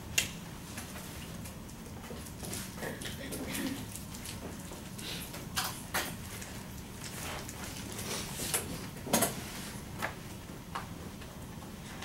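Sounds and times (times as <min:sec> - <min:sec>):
low classroom hum: 0:00.0 - 0:12.0.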